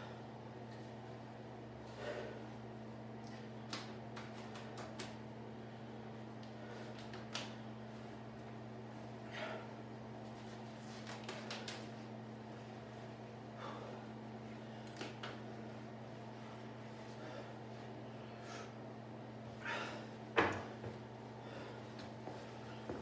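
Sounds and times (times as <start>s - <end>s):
steady low hum: 0.0s - 23.0s
man breathing: 1.8s - 2.6s, 9.2s - 9.8s, 13.4s - 14.9s, 16.4s - 18.8s, 19.5s - 20.2s, 21.3s - 23.0s.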